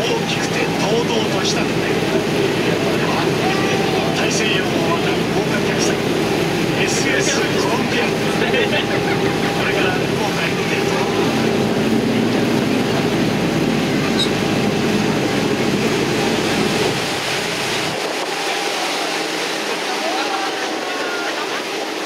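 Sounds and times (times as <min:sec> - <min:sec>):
boat engine humming: 0:00.0 - 0:22.0
water noise: 0:00.0 - 0:22.0.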